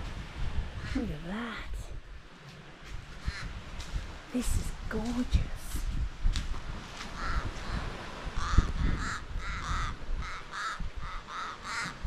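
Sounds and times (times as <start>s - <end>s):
crows cawing: 3.2s - 3.6s, 7.1s - 12.0s.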